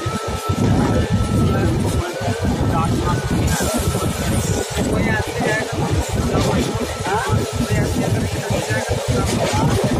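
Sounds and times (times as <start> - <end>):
train coach rumbling: 0.0 - 9.9
wind noise on microphone: 0.0 - 9.9.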